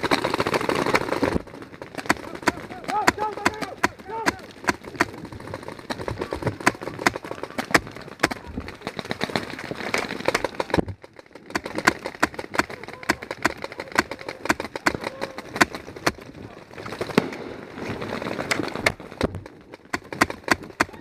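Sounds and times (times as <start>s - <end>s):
paintball markers firing: 0.0s - 21.0s.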